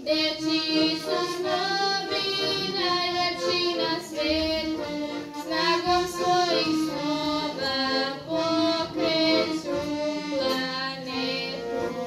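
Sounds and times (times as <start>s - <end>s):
children singing: 0.0s - 12.0s
piano accordion: 0.0s - 12.0s.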